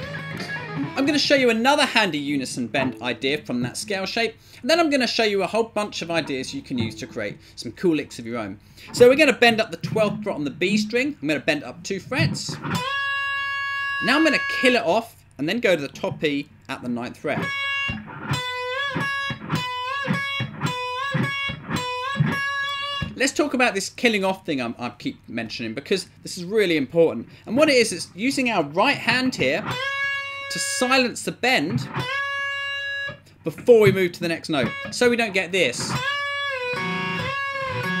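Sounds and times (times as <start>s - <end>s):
electric guitar bending notes: 0.0s - 4.6s, 5.8s - 14.9s, 17.2s - 23.2s, 27.5s - 38.0s.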